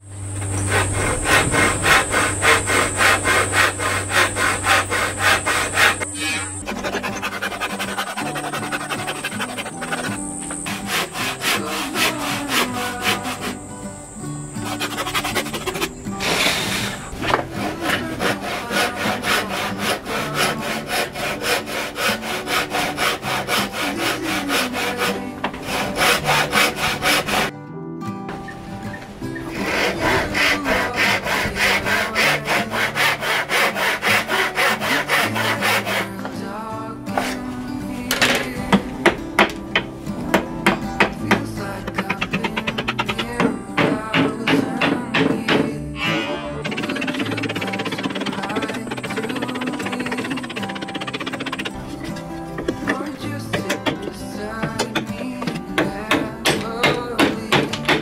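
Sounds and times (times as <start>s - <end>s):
handsaw cutting wood: 0.4s - 13.6s, 14.5s - 27.5s, 29.4s - 36.5s, 37.1s - 58.0s
hammer striking chisel: 38.1s - 58.0s.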